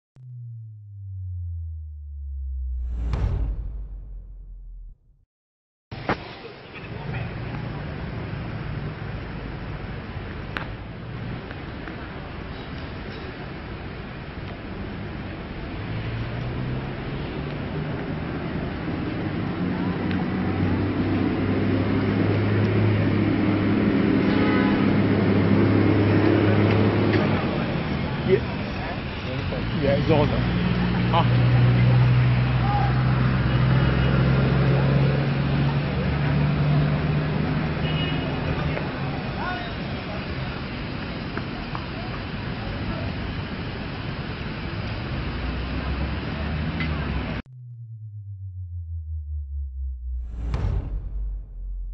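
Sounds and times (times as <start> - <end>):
tone gliding downward: 0.2 - 5.1, 47.5 - 51.9
low electronic drone: 0.2 - 5.2, 47.5 - 51.9.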